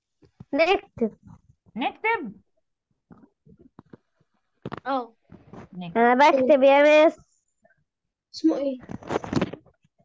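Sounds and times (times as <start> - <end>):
person speaking: 4.7 - 7.2.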